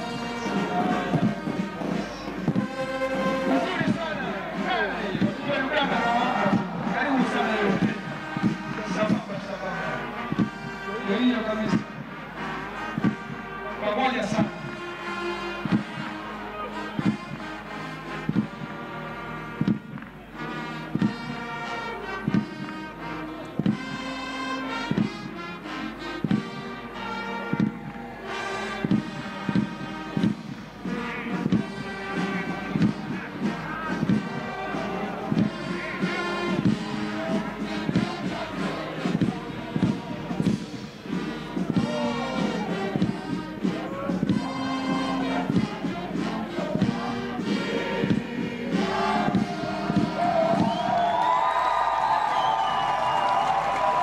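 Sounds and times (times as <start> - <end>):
bass drum beat: 0.0 - 54.0
brass band playing: 0.0 - 54.0.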